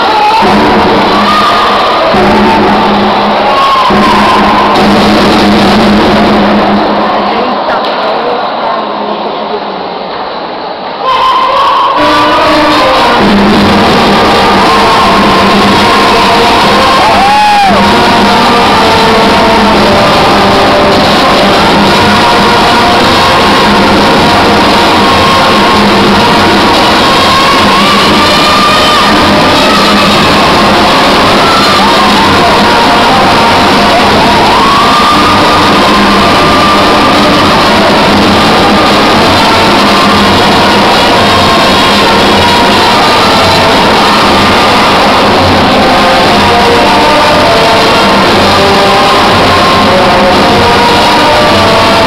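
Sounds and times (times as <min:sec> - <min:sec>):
loud live music: 0:00.0 - 0:09.2, 0:11.0 - 0:52.0
crowd shouting and cheering: 0:00.0 - 0:52.0.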